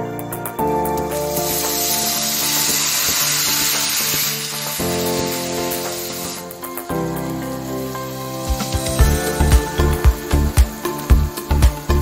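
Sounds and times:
beans sizzling in hot oil: 0.4 - 12.0.

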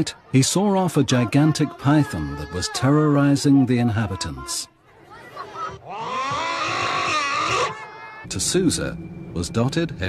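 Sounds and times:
children screaming: 0.0 - 8.3.

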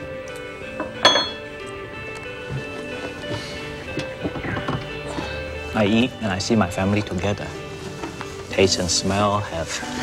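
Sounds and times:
soft background music: 0.0 - 10.0
dishware clinking on table: 0.8 - 1.4.

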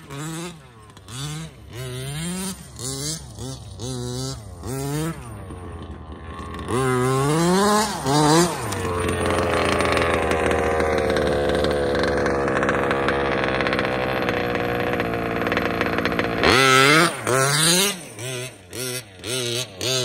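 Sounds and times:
model car engine revving: 0.0 - 20.0.

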